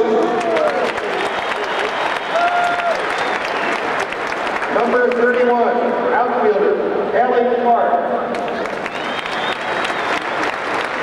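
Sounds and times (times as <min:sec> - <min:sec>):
stadium crowd applauding: 0:00.0 - 0:05.8, 0:08.3 - 0:11.0.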